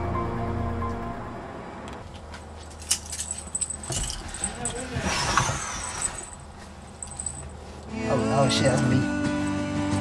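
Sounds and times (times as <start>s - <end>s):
keys jangling: 2.6s - 4.9s, 5.9s - 7.6s
clothes rustling: 5.8s - 8.0s.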